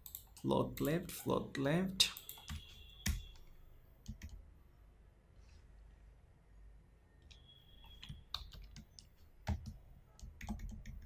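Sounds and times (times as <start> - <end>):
computer keyboard keystrokes: 2.2 - 4.4, 8.0 - 11.0.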